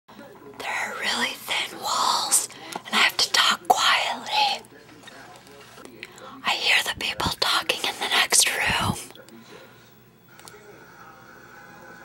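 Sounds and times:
person whispering: 0:00.6 - 0:04.8, 0:05.9 - 0:09.4.

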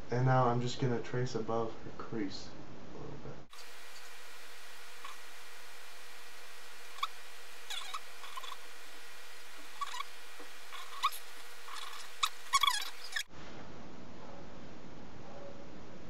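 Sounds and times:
short high-pitched squeaks: 0:07.0 - 0:08.6, 0:09.7 - 0:13.3.

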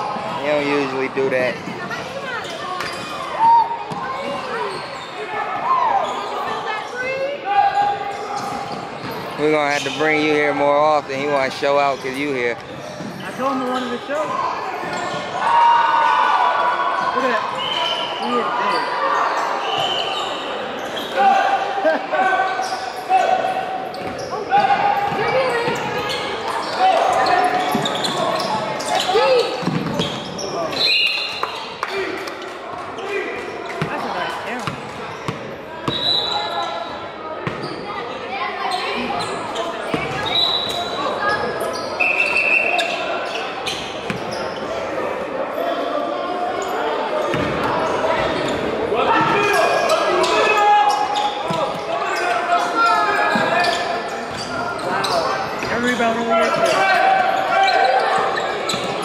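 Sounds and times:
echoing spectators' voices: 0:00.0 - 0:59.0
basketball bouncing on hardwood: 0:29.6 - 0:30.0.

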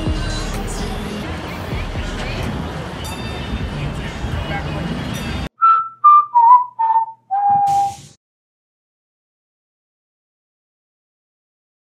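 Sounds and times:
outdoor crowd noise: 0:00.0 - 0:05.5
whistled descending tune: 0:05.6 - 0:08.0.

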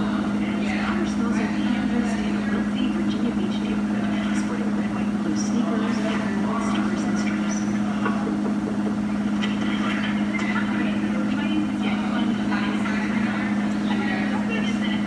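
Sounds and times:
washing machine drum spinning: 0:00.0 - 0:15.0.

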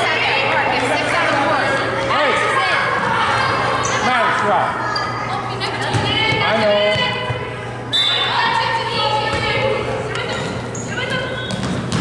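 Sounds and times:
steady low hum: 0:00.0 - 0:12.0
basketball bouncing on hardwood: 0:11.5 - 0:12.0.

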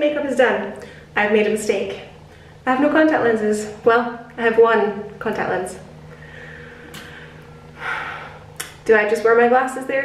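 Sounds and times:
faint steady hum: 0:00.0 - 0:10.0
woman's sharp intake of breath: 0:06.2 - 0:08.6.

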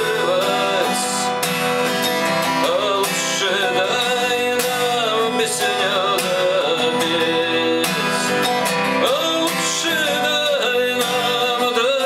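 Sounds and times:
man singing rock song: 0:00.0 - 0:12.0
strummed acoustic guitar: 0:00.0 - 0:12.0.

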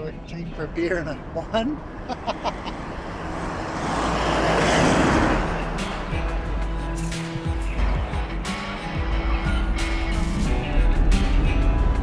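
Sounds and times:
road and wind noise in vehicle: 0:00.0 - 0:12.0
rushing noise: 0:01.8 - 0:06.5.

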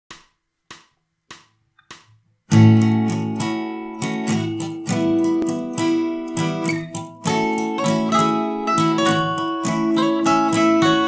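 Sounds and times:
sharp count-in clicks: 0:00.1 - 0:07.3.

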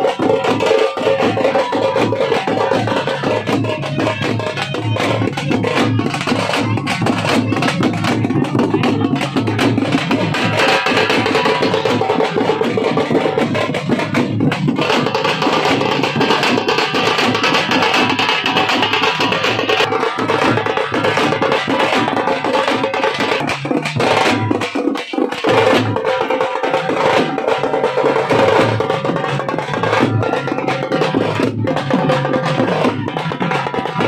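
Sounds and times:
drums beaten with sticks: 0:00.0 - 0:34.0.

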